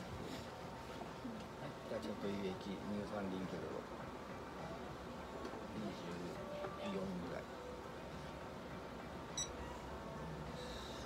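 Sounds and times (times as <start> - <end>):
short high-pitched beep: 9.4 - 9.6.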